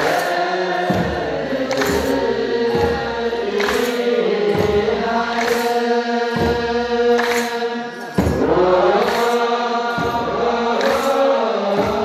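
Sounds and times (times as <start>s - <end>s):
church chanting over microphone: 0.0s - 12.0s.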